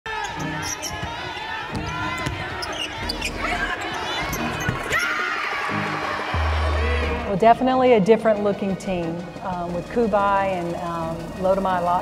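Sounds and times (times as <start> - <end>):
sneaker squeaks: 0.1 - 5.2
arena voices: 0.1 - 7.5
basketball dribbling: 0.5 - 3.3.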